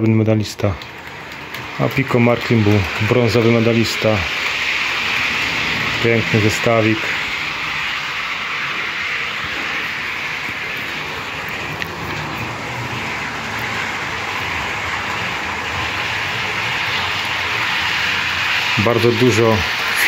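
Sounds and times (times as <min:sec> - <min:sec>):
model trains whirring on rails: 0:00.0 - 0:20.0.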